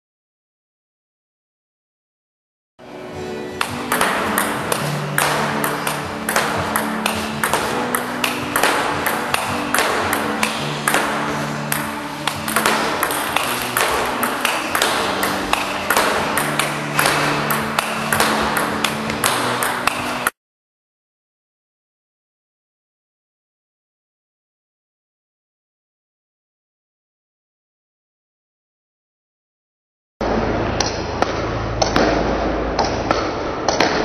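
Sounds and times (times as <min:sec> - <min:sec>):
background music: 0:02.8 - 0:20.4, 0:30.2 - 0:34.0
table tennis ball clicks: 0:03.6 - 0:20.4.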